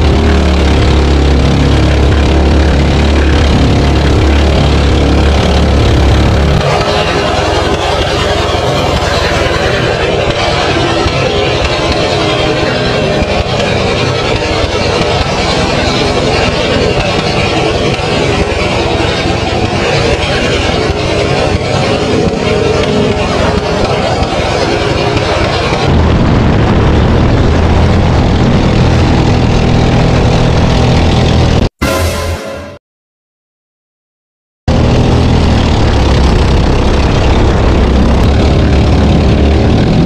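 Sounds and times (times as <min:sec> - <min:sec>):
wind rush on microphone: 0:00.0 - 0:31.7, 0:34.7 - 0:40.0
boat engine drone: 0:00.0 - 0:32.8, 0:34.7 - 0:40.0.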